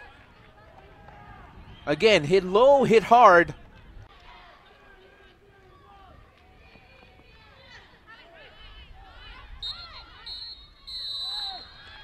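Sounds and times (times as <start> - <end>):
players shouting: 0.1 - 3.5
referee's whistle: 9.6 - 12.0.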